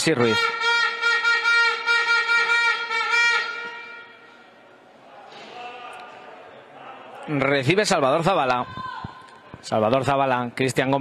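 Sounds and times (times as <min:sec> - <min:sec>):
game horn long blast: 0:00.2 - 0:04.4.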